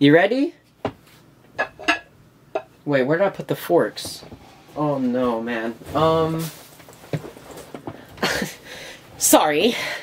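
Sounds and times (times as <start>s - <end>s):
dishware clattering: 1.6s - 2.7s.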